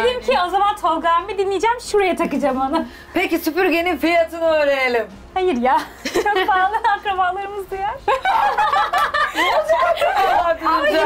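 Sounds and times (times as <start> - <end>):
women laughing: 5.8 - 7.0, 8.0 - 11.0.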